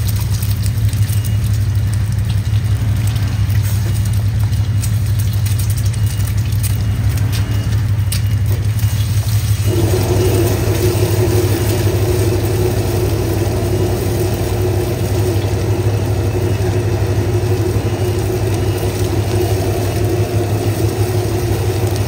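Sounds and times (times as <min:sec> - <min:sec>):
eggs sizzling in oil: 0:00.0 - 0:22.0
gas burner roaring: 0:00.0 - 0:22.0.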